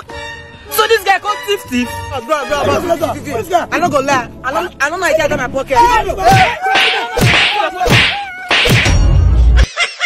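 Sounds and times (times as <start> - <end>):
man wailing: 5.8 - 8.6.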